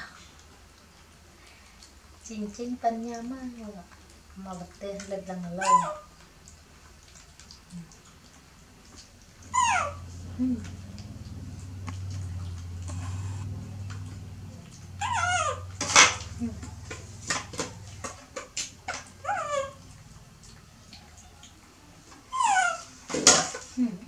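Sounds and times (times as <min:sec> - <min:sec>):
low steady hum: 0:00.0 - 0:22.8
monkey high-pitched calls: 0:05.6 - 0:06.2, 0:09.5 - 0:10.1, 0:15.0 - 0:16.2, 0:18.9 - 0:19.8, 0:22.3 - 0:23.0.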